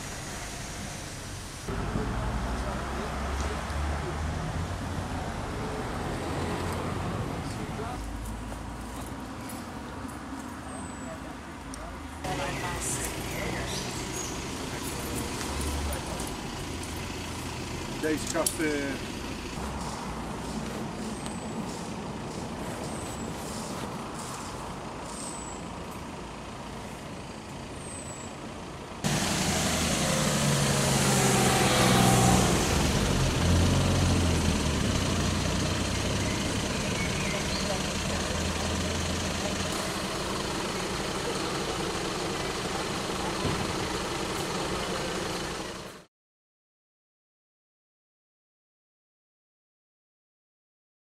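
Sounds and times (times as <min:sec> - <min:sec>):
heavy vehicle engine running: 0:00.0 - 0:46.1
traffic: 0:00.0 - 0:46.1.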